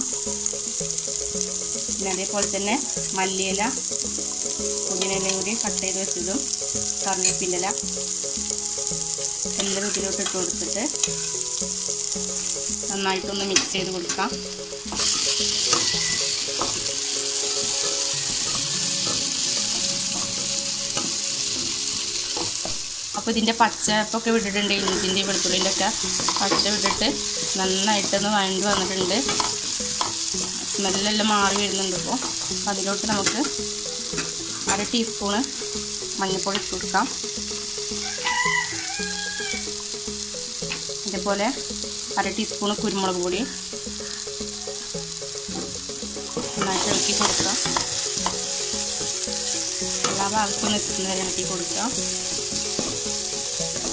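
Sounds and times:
vegetables sizzling in a pan: 0.0 - 53.9
spatula stirring and scraping: 24.6 - 32.5, 52.1 - 53.9.

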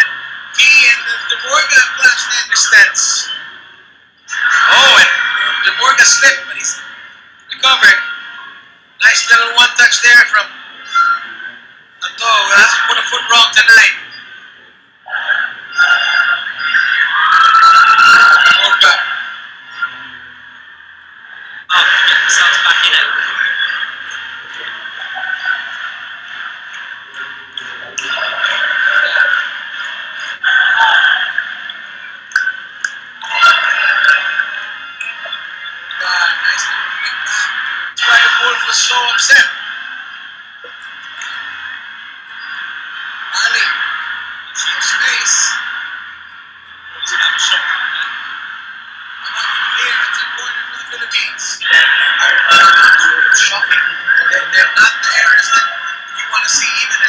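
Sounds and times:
indistinct voices on television: 0.0 - 57.0.

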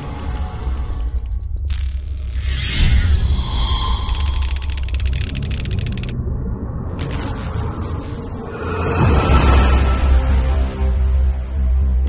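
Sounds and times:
rapid pulsing buzz: 0.0 - 6.2
deep rumble: 0.0 - 11.0.

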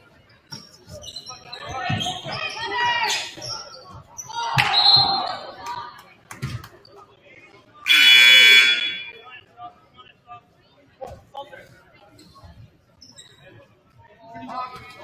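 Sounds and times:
scoreboard horn: 7.9 - 9.1
shrill whistle blast: 7.9 - 9.1.

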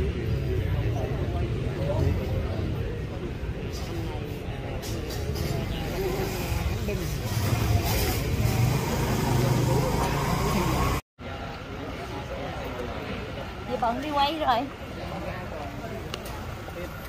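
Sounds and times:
street traffic rumble: 0.0 - 17.0.

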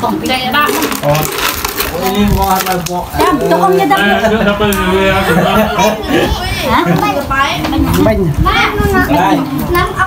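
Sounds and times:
plastic cups and tableware clinking: 0.0 - 4.1
people talking: 1.9 - 10.0.

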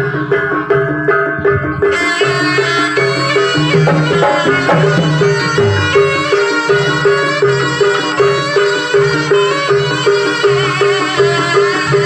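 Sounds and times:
gamelan music: 0.2 - 12.0
drum beats: 1.9 - 7.9
struck metal notes: 3.2 - 7.3
bright high melodic line: 3.4 - 7.0.

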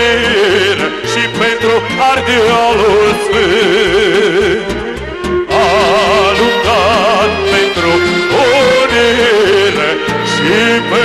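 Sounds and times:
ornamented folk dance melody: 0.0 - 11.0.

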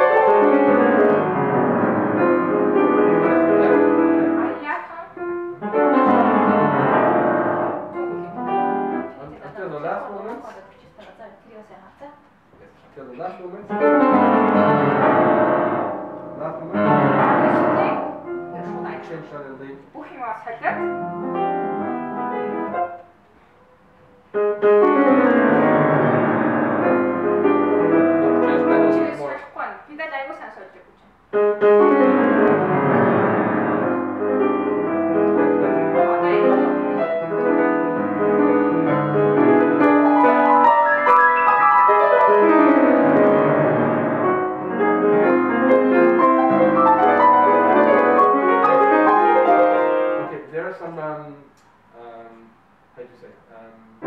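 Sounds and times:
grand piano classical passage: 0.0 - 10.4, 13.5 - 19.5, 20.7 - 29.3, 31.3 - 50.5.

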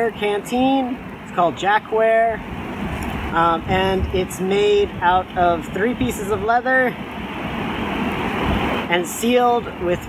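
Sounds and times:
steady rushing noise: 0.0 - 10.0.

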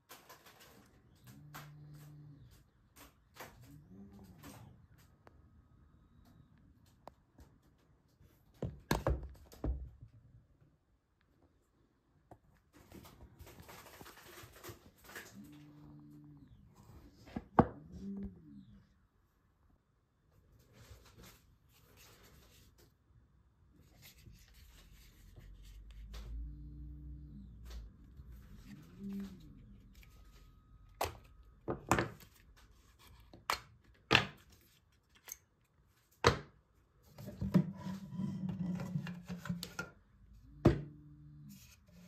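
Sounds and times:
plastic rubbing and scraping: 0.0 - 5.2, 12.6 - 18.7, 20.5 - 23.0, 23.8 - 36.2, 37.0 - 40.1.

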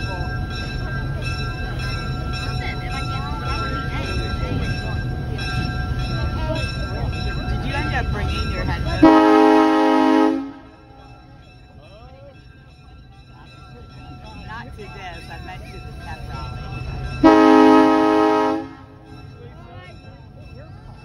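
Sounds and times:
voices: 0.0 - 21.0
train horn blast: 9.0 - 10.8, 17.2 - 19.0.

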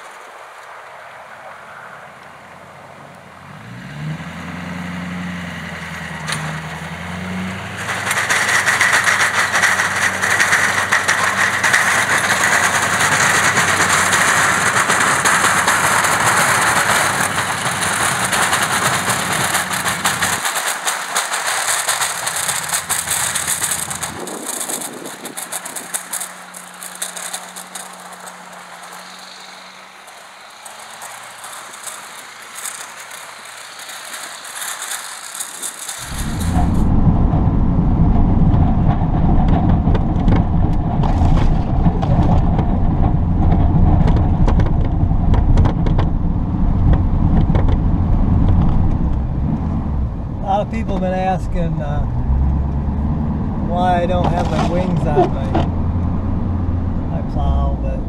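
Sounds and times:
diesel truck plowing snow: 2.2 - 58.0
diesel engine drone in cab: 36.0 - 58.0.

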